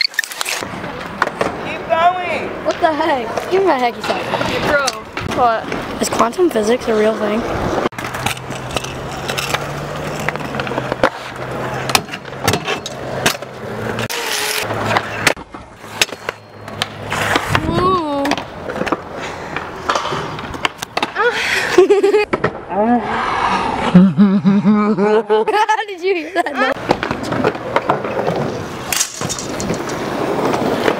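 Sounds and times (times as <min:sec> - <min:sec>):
scooter wheels rolling on concrete: 0:00.0 - 0:24.0, 0:25.5 - 0:30.9
scooter deck clacking on ground: 0:26.8 - 0:30.9.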